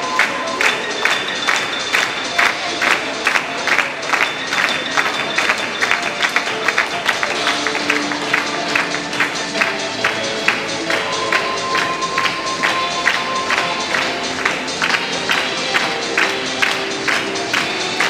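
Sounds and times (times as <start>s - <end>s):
music with fast beat: 0.0s - 18.0s.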